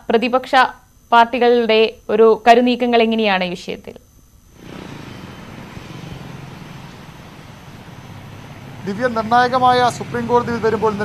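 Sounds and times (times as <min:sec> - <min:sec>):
outdoor background rumble: 0:04.5 - 0:11.0.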